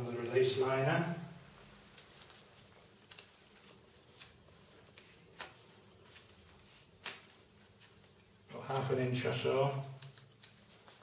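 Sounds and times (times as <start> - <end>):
plastic sheet crackling: 1.5 - 11.0.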